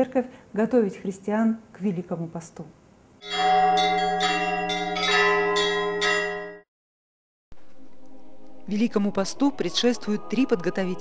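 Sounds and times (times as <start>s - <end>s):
church bells ringing: 3.2s - 6.7s.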